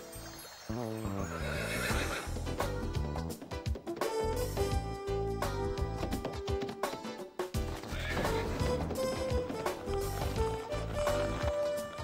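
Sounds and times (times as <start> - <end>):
background music: 0.0 - 12.0
horse whinnying: 1.2 - 2.4, 7.8 - 11.8.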